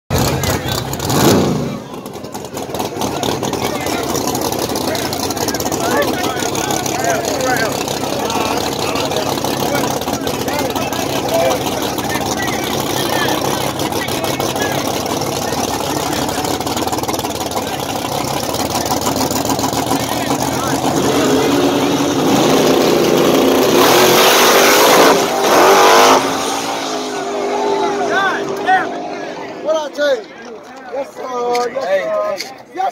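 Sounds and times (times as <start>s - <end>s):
engine revving: 0.1s - 29.7s
full-throttle car launch: 0.1s - 29.8s
racing car engines rumbling: 0.1s - 32.9s.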